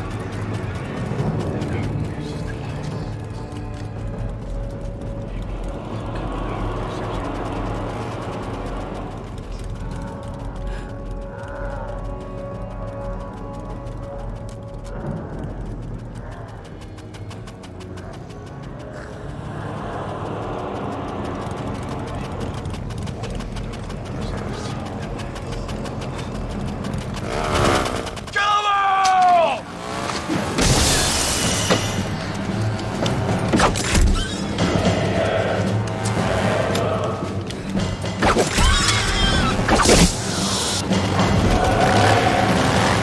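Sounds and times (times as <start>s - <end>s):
fast even ticking: 0.0s - 30.0s
tense music score: 0.0s - 43.0s.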